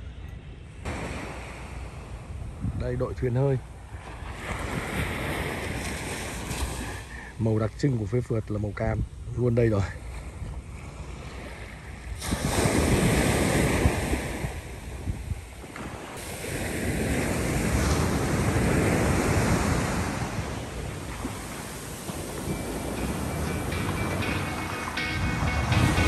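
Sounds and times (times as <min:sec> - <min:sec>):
wind buffeting microphone: 0:00.0 - 0:07.0, 0:08.2 - 0:26.0
surf washing onto beach: 0:00.9 - 0:08.3, 0:09.6 - 0:26.0.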